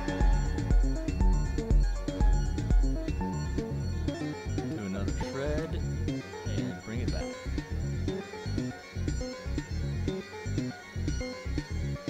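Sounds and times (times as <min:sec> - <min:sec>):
deep kick drum: 0:00.0 - 0:03.3
pitched synth notes: 0:00.0 - 0:11.7.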